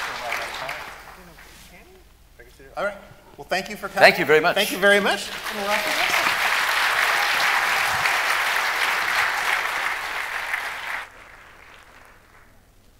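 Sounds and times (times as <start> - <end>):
audience applauding: 0.0 - 1.7, 4.8 - 12.7.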